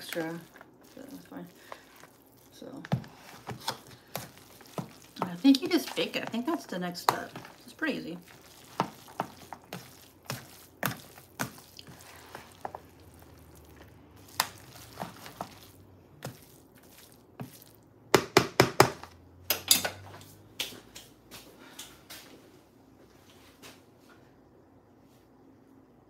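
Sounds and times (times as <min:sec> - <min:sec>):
spoon scraping plastic bowl: 0:02.8 - 0:17.7.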